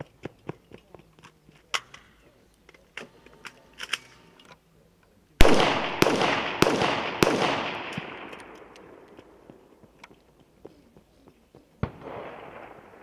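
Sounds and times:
rifle shots echoing: 5.4s - 9.8s, 11.8s - 13.0s.

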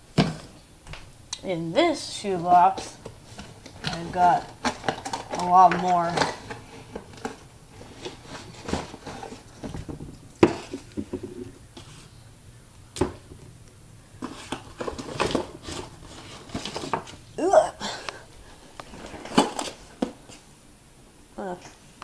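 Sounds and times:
shoebox handling knocks and clicks: 8.0s - 11.6s, 14.2s - 17.2s.

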